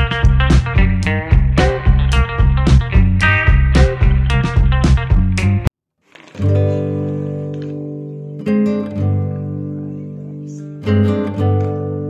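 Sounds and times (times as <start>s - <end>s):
acoustic guitar chords strummed: 0.0s - 5.7s, 6.4s - 10.2s, 10.8s - 12.0s.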